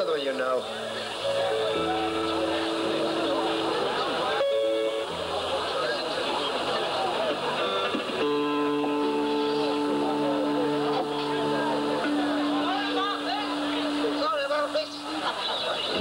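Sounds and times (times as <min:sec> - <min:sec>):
guitar: 0:00.0 - 0:16.0
double bass: 0:00.8 - 0:06.4, 0:07.2 - 0:14.3
rock and roll band playing: 0:00.8 - 0:16.0
person singing long notes: 0:08.2 - 0:14.2.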